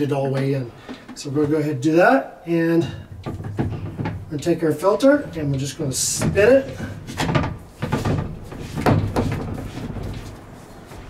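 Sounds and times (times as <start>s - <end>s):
plastic scraping and rubbing: 3.1s - 11.0s.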